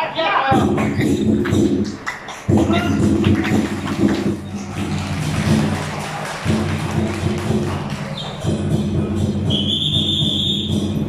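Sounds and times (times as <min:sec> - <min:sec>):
procession music with percussion: 0:00.5 - 0:11.0.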